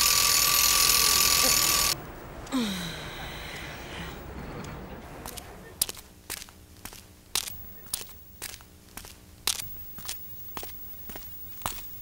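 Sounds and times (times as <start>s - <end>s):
footsteps crunching: 5.2s - 12.0s.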